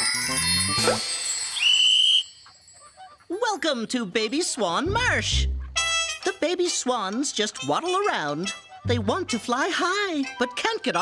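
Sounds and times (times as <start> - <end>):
rising whistle-like tone: 0.0 - 2.4.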